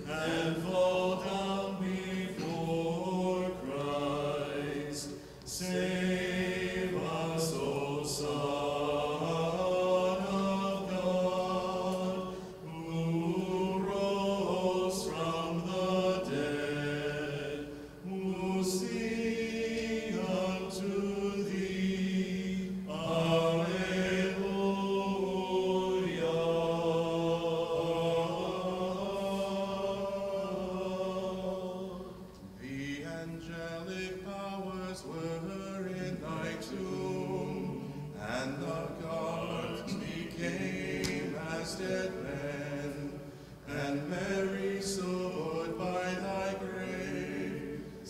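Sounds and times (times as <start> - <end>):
voices chanting: 0.0 - 48.0.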